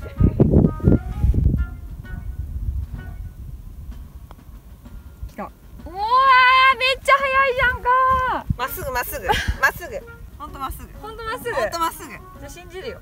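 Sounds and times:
woman exclaiming in surprise: 5.9 - 8.4.

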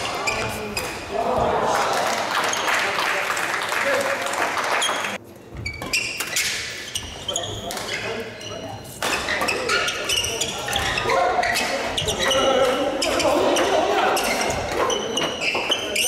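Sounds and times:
shoes squeaking: 0.0 - 1.1, 4.8 - 16.0
voices: 0.0 - 4.4, 7.0 - 16.0.

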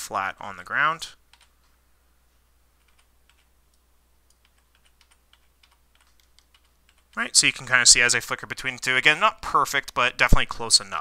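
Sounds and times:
low steady hum: 0.0 - 11.0
mouse and keyboard clicks: 2.8 - 7.2.

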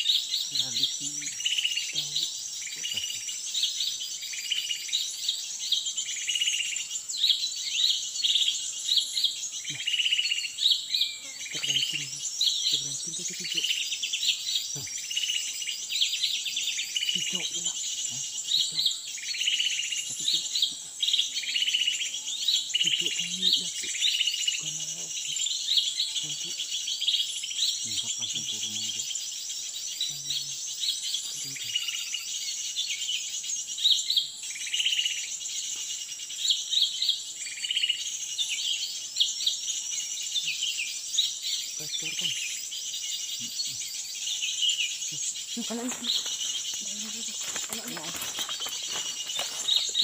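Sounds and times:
high-pitched insect drone: 0.0 - 50.0
songbirds chirping and trilling: 0.0 - 50.0.

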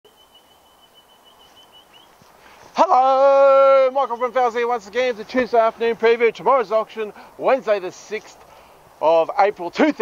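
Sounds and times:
high-pitched bird call: 0.1 - 2.2
faint outdoor ambience: 0.1 - 10.0.

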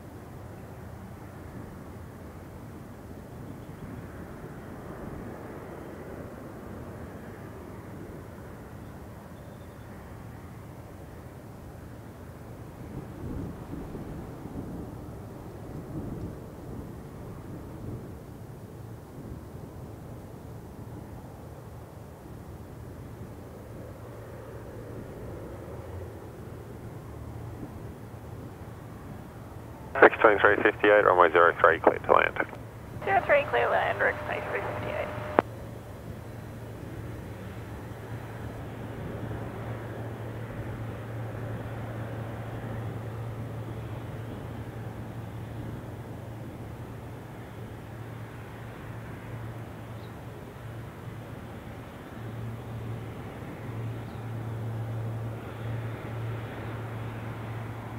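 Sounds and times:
distant jet engines rumbling: 23.0 - 57.9
radio click: 30.0 - 35.4
low hum: 30.0 - 36.5.

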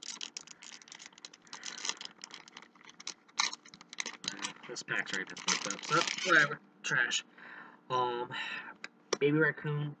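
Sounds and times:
foil wrapper crinkling: 0.0 - 6.5.

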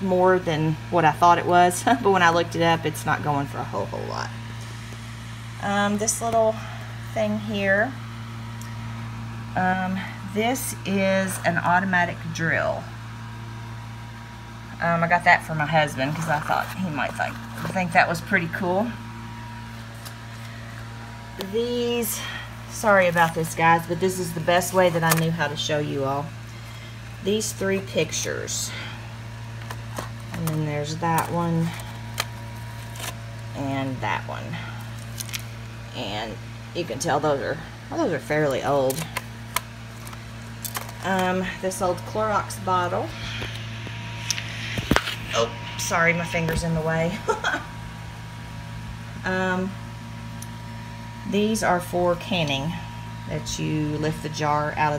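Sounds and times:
fan humming: 0.0 - 54.9
faint constant high tone: 42.0 - 48.2.

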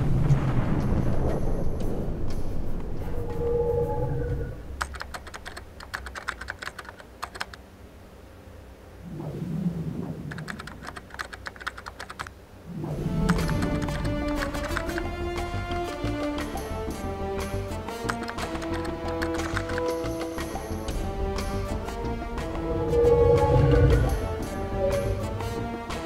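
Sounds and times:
low rumbles: 0.0 - 5.9, 8.5 - 26.0
rapid keyboard typing clicks: 4.8 - 7.6, 10.3 - 12.3, 13.2 - 15.1, 17.9 - 20.5.

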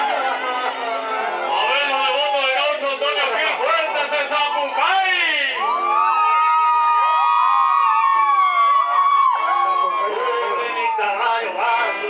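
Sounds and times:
crowd whooping: 0.0 - 12.0.

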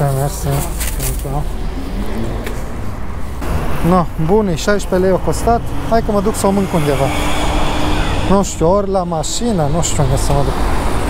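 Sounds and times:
person speaking: 0.0 - 2.4, 3.7 - 7.3
street traffic rumble: 0.0 - 11.0.

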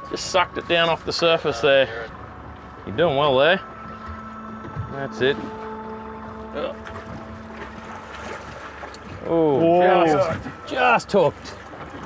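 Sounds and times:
boat engine idling: 0.0 - 12.0.

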